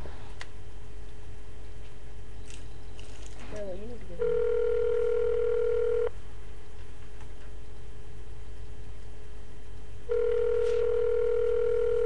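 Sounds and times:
telephone ringback tone: 0:04.2 - 0:06.1, 0:10.1 - 0:12.0.

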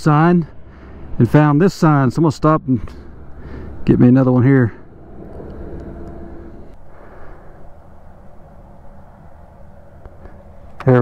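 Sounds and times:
wind buffeting microphone: 0:00.2 - 0:11.0.

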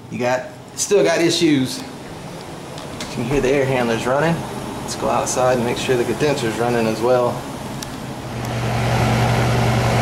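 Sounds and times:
air conditioner unit humming: 0:00.0 - 0:10.0.

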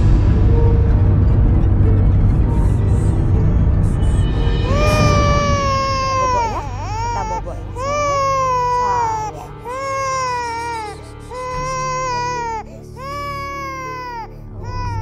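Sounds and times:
soft background music: 0:00.0 - 0:15.0
baby crying: 0:04.7 - 0:15.0.

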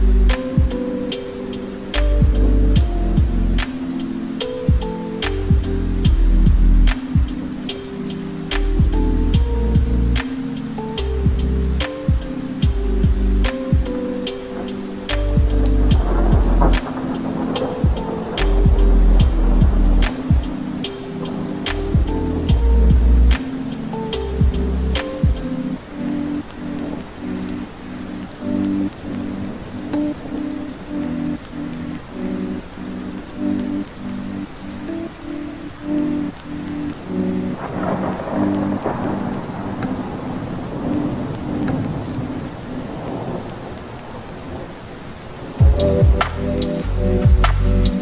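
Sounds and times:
bass beat: 0:00.0 - 0:00.8, 0:02.0 - 0:03.7, 0:04.7 - 0:07.4, 0:08.5 - 0:10.3, 0:11.1 - 0:14.0, 0:15.1 - 0:16.9, 0:17.8 - 0:20.6, 0:21.7 - 0:23.4, 0:24.2 - 0:25.5, 0:45.6 - 0:48.0
thunder rumbling: 0:00.0 - 0:33.8, 0:36.1 - 0:48.0
lo-fi keyboard melody: 0:00.0 - 0:48.0
rain: 0:00.0 - 0:48.0.

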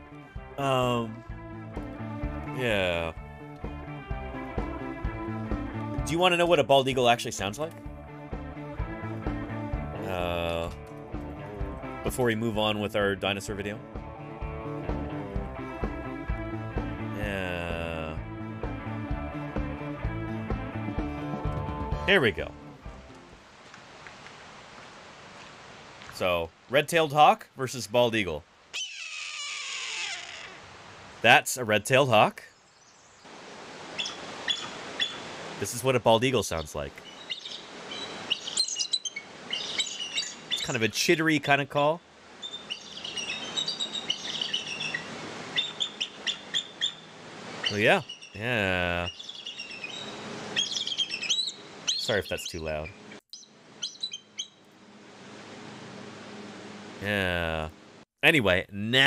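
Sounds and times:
recording hiss: 0:22.2 - 0:53.8, 0:54.6 - 0:59.0
eagle call chittery notes: 0:34.0 - 0:35.8, 0:36.4 - 0:54.6.

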